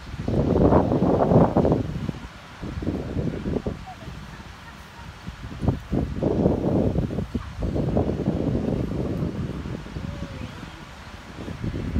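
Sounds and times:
wind buffeting microphone: 0:00.0 - 0:11.9.

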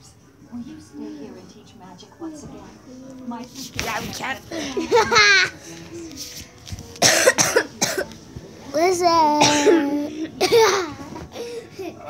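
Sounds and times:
child coughing: 0:07.0 - 0:08.1, 0:09.2 - 0:11.0.

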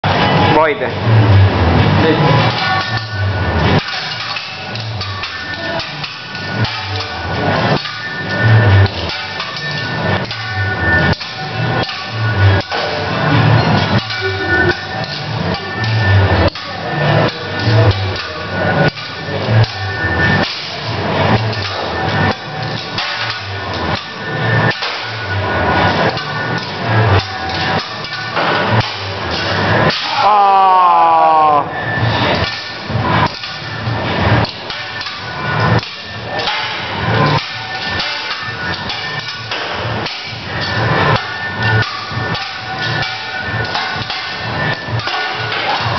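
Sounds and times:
music with steady beat: 0:00.0 - 0:45.9
spatula and knife clacking on griddle: 0:03.7 - 0:07.1, 0:07.7 - 0:12.9, 0:34.4 - 0:45.9.

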